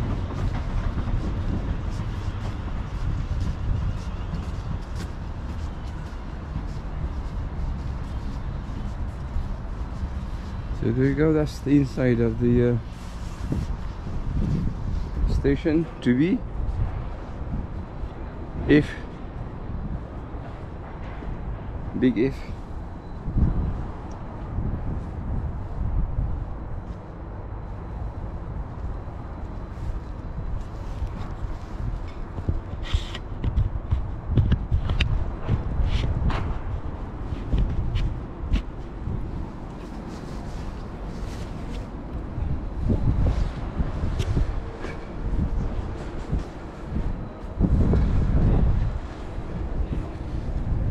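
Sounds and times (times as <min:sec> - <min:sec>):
footsteps: 0:00.0 - 0:10.8
wind buffeting microphone: 0:00.0 - 0:50.9.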